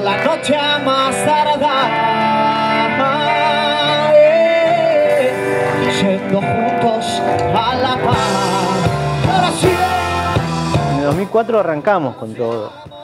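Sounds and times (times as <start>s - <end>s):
electric guitar: 0.0s - 13.0s
live reggae band playing: 0.0s - 13.0s.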